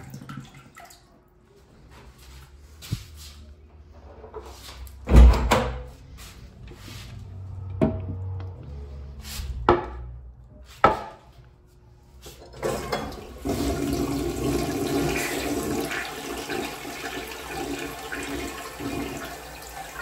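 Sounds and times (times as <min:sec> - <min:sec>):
toilet flushing water rushing: 0:12.4 - 0:20.0.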